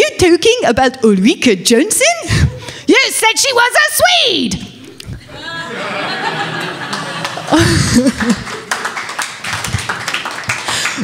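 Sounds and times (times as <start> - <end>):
audience clapping: 6.2 - 11.0.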